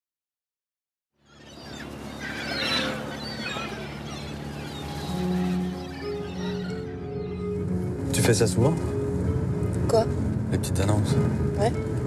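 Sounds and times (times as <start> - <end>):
birds chirping: 1.2 - 12.0
low steady drone: 1.6 - 12.0.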